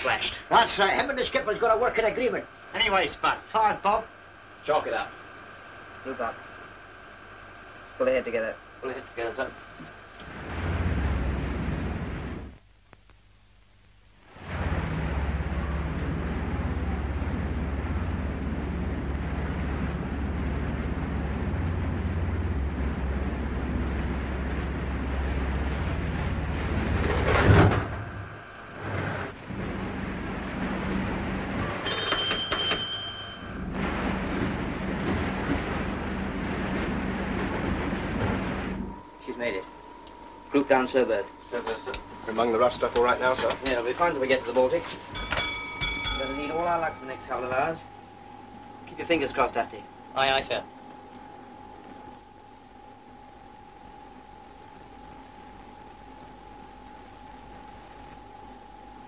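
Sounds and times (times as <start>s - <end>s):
submarine engines rumbling: 0.0s - 12.6s, 14.3s - 32.6s, 33.3s - 59.0s.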